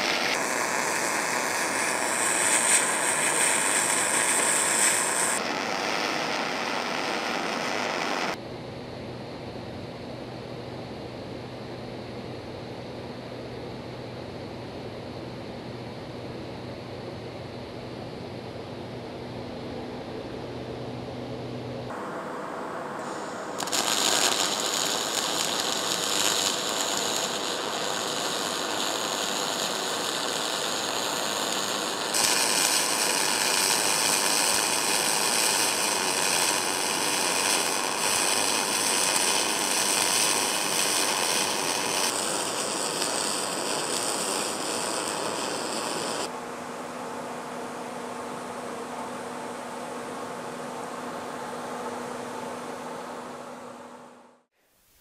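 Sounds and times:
welding arc hissing and crackling: 0:00.0 - 0:08.4, 0:21.9 - 0:46.3.

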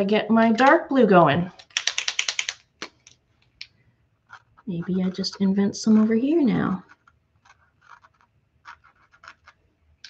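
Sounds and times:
paint marker ball rattling: 0:01.6 - 0:03.2, 0:04.2 - 0:09.6.

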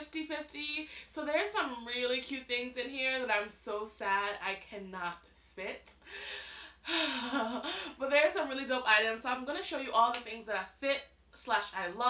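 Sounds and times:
woman sighing: 0:06.1 - 0:08.0.

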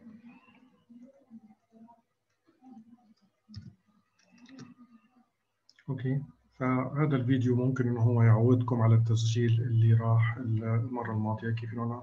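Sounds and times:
mouse and keyboard clicks: 0:02.2 - 0:04.9.

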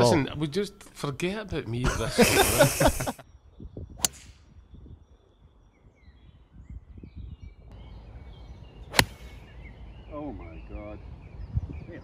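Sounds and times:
low wind rumble: 0:01.8 - 0:12.0
faint bird chirps: 0:03.2 - 0:12.0
golf club striking ball: 0:08.9 - 0:09.3.

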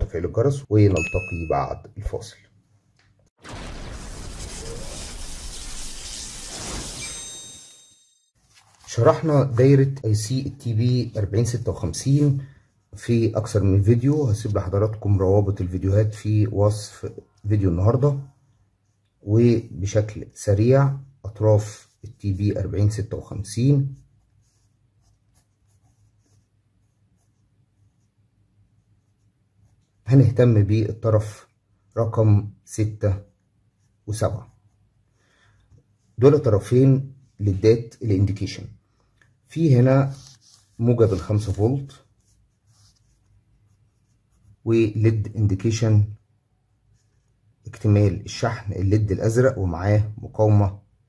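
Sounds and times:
crackling electric hiss: 0:03.4 - 0:07.6
pen scratching on paper: 0:23.8 - 0:30.0, 0:40.1 - 0:44.7.

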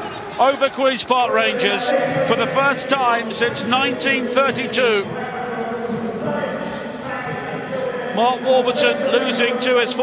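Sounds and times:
men's voices calling and talking: 0:00.0 - 0:10.0.

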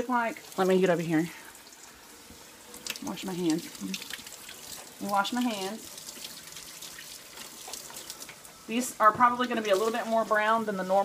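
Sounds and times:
faucet running: 0:00.0 - 0:11.0
hands washing under water: 0:00.4 - 0:11.0.

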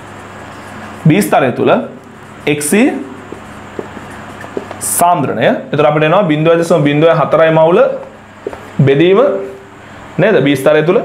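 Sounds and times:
marker writing on whiteboard: 0:00.0 - 0:05.3, 0:07.8 - 0:08.8
room hiss: 0:00.0 - 0:11.0.

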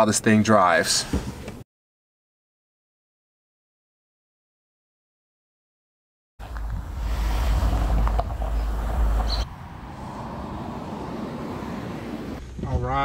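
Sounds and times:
outdoor hiss: 0:06.4 - 0:12.4
wind buffeting microphone: 0:06.4 - 0:12.4.

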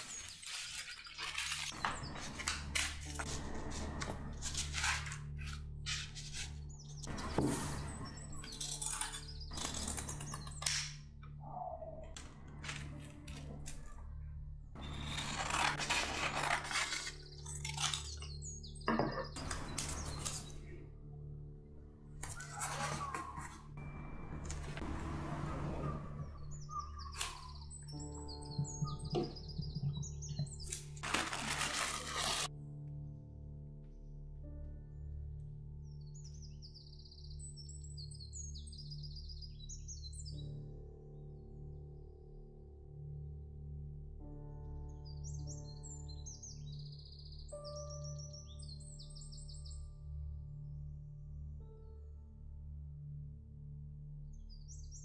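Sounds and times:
paper rustling and crinkling: 0:00.0 - 0:07.8, 0:14.8 - 0:18.3, 0:22.2 - 0:23.6, 0:30.4 - 0:32.5
soft background music: 0:00.0 - 0:55.0
bird-like chirps: 0:25.7 - 0:31.0.

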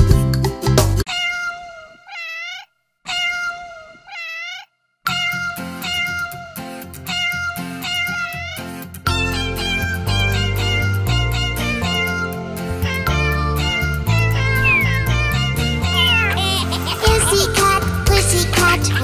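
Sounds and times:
cartoon kitten meows: 0:01.1 - 0:08.7, 0:12.9 - 0:17.4
upbeat music: 0:14.2 - 0:19.0.

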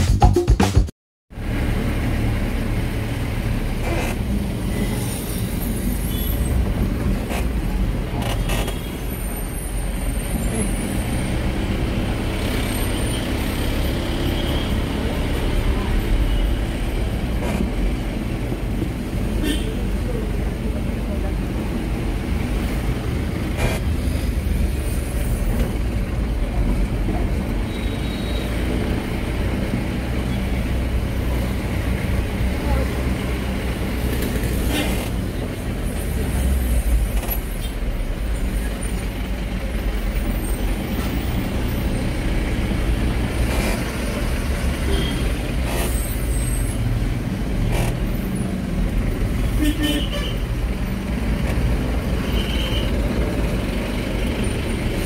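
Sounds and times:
van engine and road drone: 0:00.0 - 0:55.0.

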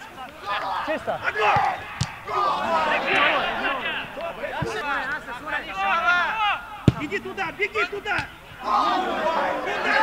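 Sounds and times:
players shouting: 0:00.0 - 0:10.0
ball kick: 0:01.5 - 0:02.3, 0:06.8 - 0:07.1.

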